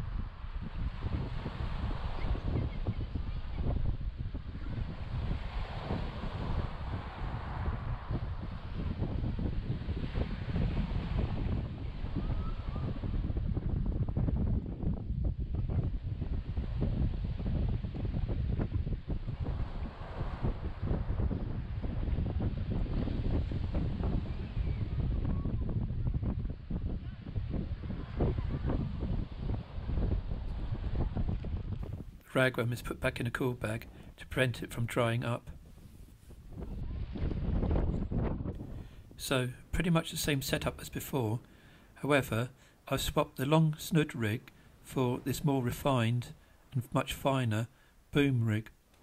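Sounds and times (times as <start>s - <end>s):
wind buffeting microphone: 0.0s - 34.3s, 34.9s - 39.9s.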